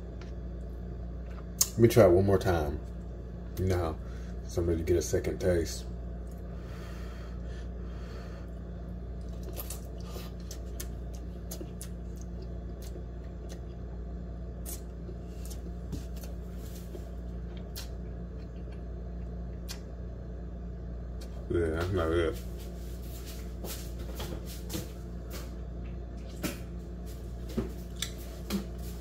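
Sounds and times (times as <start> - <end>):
steady low hum: 0.0 - 29.0
man eating noodles: 8.5 - 13.9.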